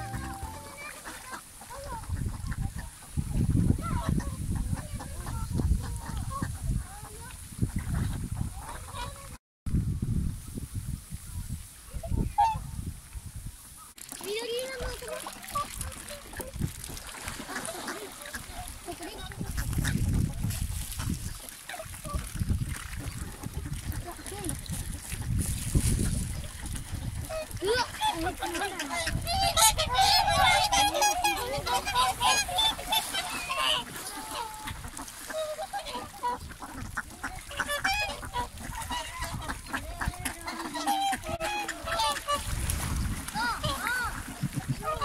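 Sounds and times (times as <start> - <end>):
swans and ducks calling: 0.0 - 3.2, 12.0 - 12.7, 13.8 - 45.0.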